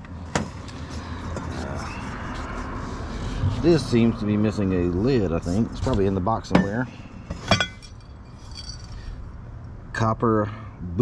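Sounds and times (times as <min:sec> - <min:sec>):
low outdoor rumble: 0:00.0 - 0:11.0
metal items clinking in a box: 0:07.5 - 0:09.1.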